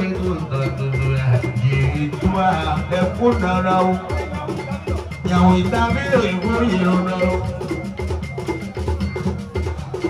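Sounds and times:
man singing into a microphone: 0:00.0 - 0:07.8
live band music over loudspeakers: 0:00.0 - 0:10.0.

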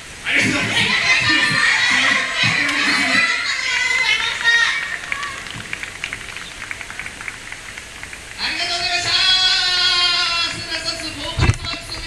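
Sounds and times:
crowd voices: 0:00.2 - 0:12.0
scattered clapping: 0:00.5 - 0:03.2, 0:03.9 - 0:09.7, 0:10.5 - 0:12.0.

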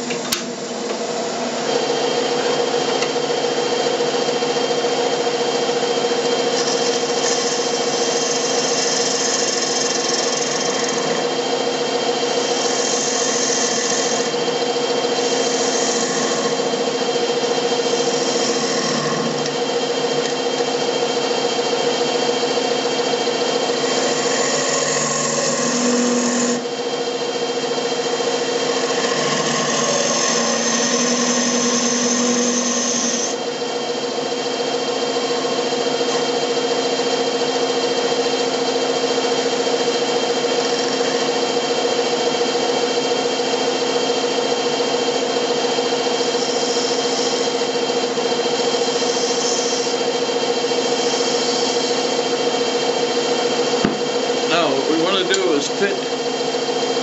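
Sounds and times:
wood lathe motor hum: 0:00.0 - 0:57.0
turning tool scraping wood: 0:06.4 - 0:11.4, 0:12.3 - 0:14.4, 0:15.1 - 0:17.0, 0:17.6 - 0:20.4, 0:23.7 - 0:26.6, 0:28.7 - 0:33.4, 0:48.6 - 0:50.0.

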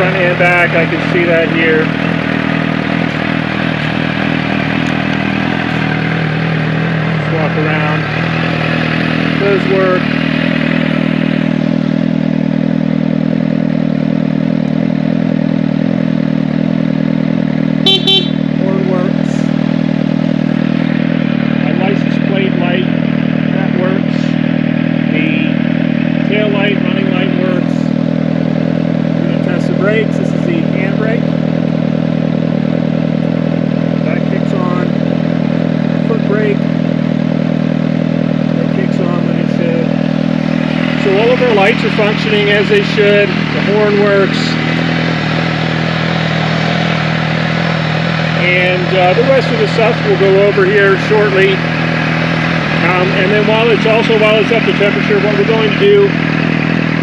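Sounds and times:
motorcycle engine idling: 0:00.0 - 0:57.0
engine throttle blip: 0:17.8 - 0:18.8.

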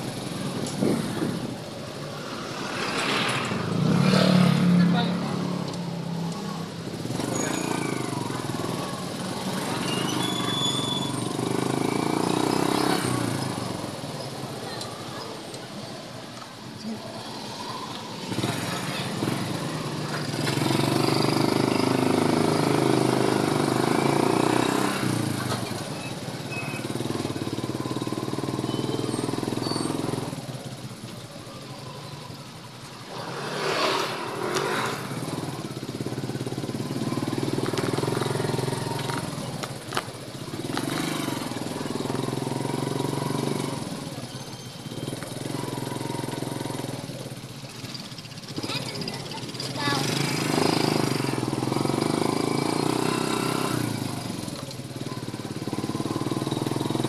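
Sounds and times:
motorcycle engine running: 0:18.2 - 0:57.0.

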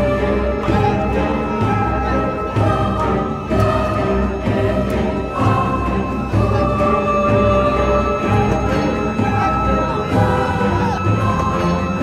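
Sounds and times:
choir-like voices: 0:00.0 - 0:12.0
music with long held notes: 0:00.0 - 0:12.0.

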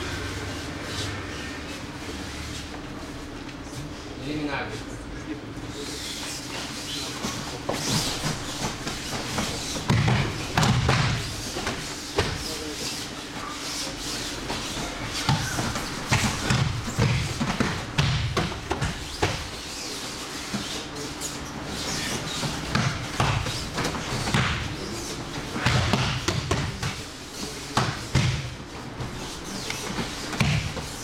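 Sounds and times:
bodies thudding on mats: 0:07.5 - 0:12.5.

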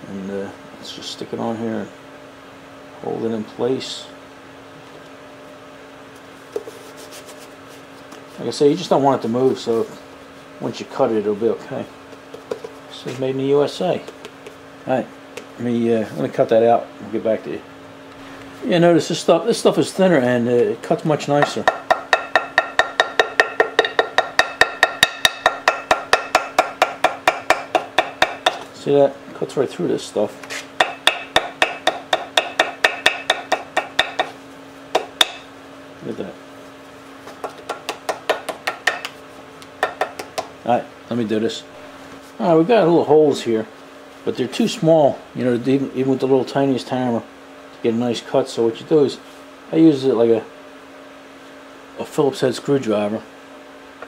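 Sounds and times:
steady low hum: 0:00.0 - 0:54.0
small hammer tapping metal: 0:21.4 - 0:28.7, 0:30.8 - 0:34.3, 0:35.0 - 0:35.4, 0:37.4 - 0:39.2, 0:39.8 - 0:40.5.

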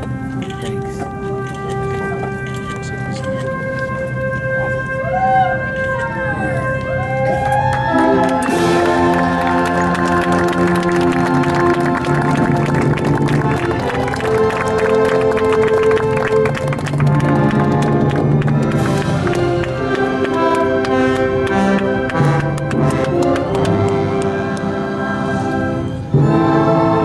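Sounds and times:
orchestral brass chords: 0:00.0 - 0:27.0.

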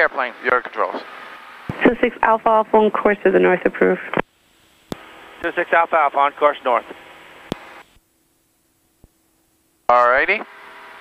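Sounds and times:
faint radio hiss: 0:00.0 - 0:10.5.

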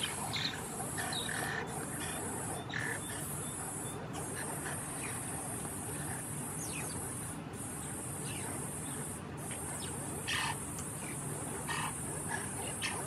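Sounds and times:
insects trilling: 0:00.0 - 0:13.0
mongooses chirping: 0:00.0 - 0:13.0.

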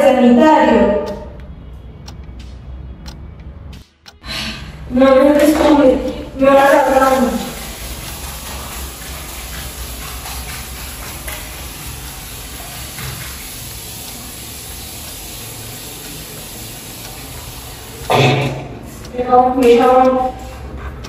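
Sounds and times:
tap running: 0:04.9 - 0:21.0
water splashing over hands: 0:05.2 - 0:19.0.

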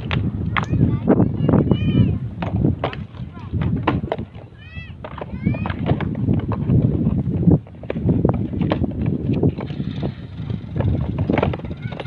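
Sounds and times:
low rumble on microphone: 0:00.0 - 0:12.0
footsteps on stony dirt path: 0:02.4 - 0:12.0.

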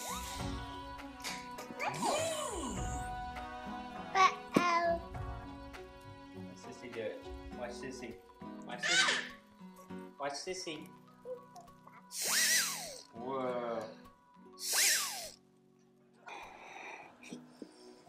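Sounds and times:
blowing into a balloon: 0:00.0 - 0:00.6, 0:12.1 - 0:13.1, 0:14.6 - 0:15.4
background music: 0:00.0 - 0:18.0
child's voice: 0:01.8 - 0:02.7, 0:04.1 - 0:05.1
toy whistle toots: 0:12.2 - 0:13.1, 0:14.6 - 0:15.4.

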